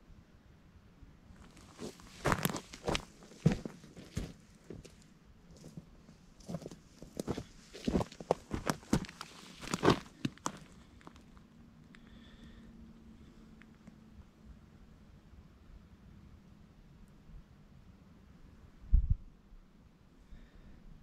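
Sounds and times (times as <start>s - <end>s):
footsteps crunching on dry twigs: 1.4s - 5.8s, 6.4s - 11.3s.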